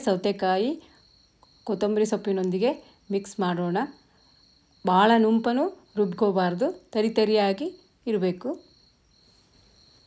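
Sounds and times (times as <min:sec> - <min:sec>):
woman speaking: 0:00.0 - 0:00.9, 0:01.6 - 0:04.0, 0:04.8 - 0:08.7.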